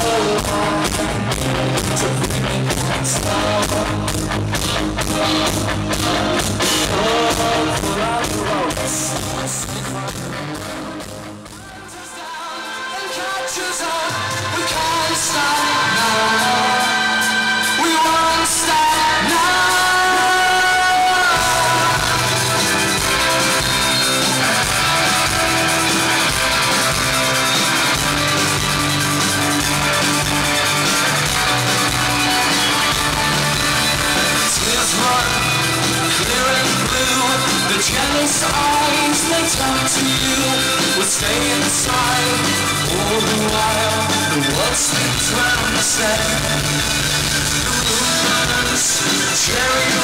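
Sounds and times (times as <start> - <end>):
steady drum beat: 0.0 - 12.1, 13.9 - 50.0
electric guitars: 0.0 - 50.0
rock band playing loud: 0.0 - 50.0.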